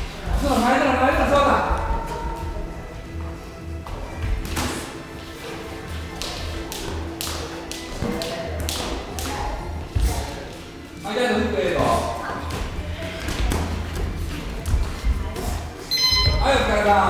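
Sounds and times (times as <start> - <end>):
footwork on ring canvas: 0.0 - 10.8, 11.7 - 16.7.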